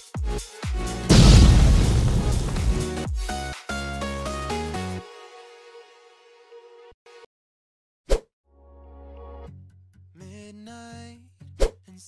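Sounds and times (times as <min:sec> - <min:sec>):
sharp pop: 0:01.1 - 0:02.9.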